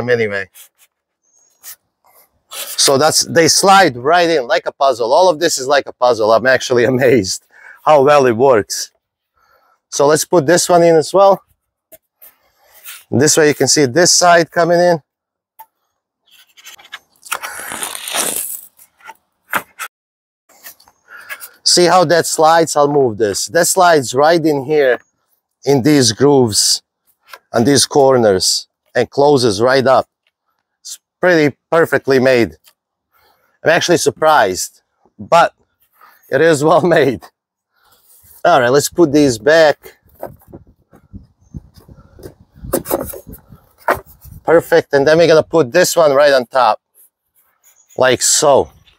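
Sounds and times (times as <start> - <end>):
polystyrene panel scrape: 2.5 - 2.9, 12.2 - 13.1, 16.3 - 19.9
polystyrene panels rubbing and knocking: 40.0 - 41.2.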